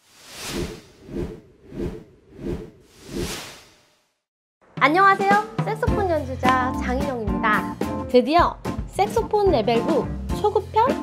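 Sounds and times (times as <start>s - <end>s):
whoosh sound effect: 0.0s - 4.0s.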